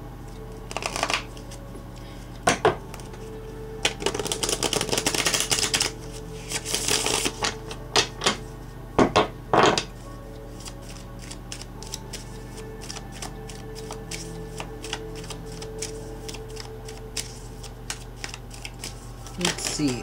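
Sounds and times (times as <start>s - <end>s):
cards being shuffled: 0.3s - 8.5s, 9.9s - 20.0s
cards tapping and slapping: 0.7s - 1.5s, 3.8s - 5.9s, 10.6s - 12.2s, 12.8s - 20.0s.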